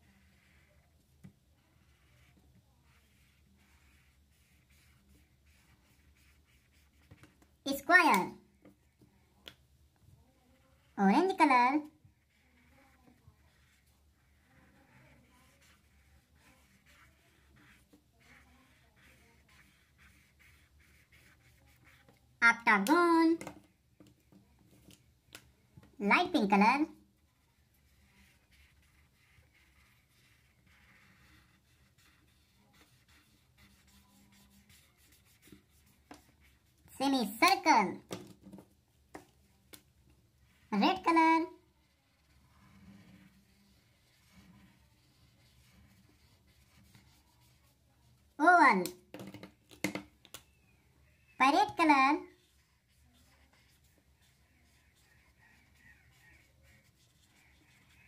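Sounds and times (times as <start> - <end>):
marker rubbing on paper: 0.0 - 9.3, 10.4 - 23.5, 26.3 - 37.8, 39.1 - 49.5, 51.4 - 58.0
person speaking: 7.7 - 8.4, 10.9 - 11.9, 17.4 - 23.5, 26.0 - 27.0, 40.7 - 41.6, 48.4 - 49.0, 51.4 - 52.4.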